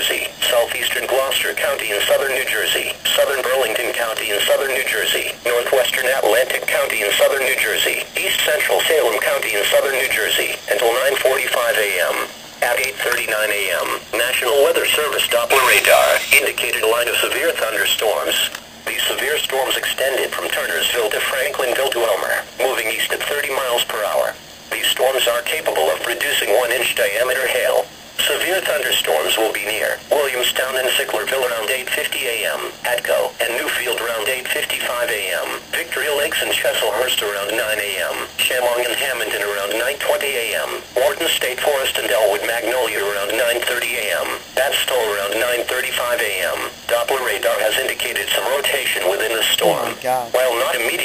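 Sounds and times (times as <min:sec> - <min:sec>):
broadcast voice speaking: 0:00.0 - 0:51.0.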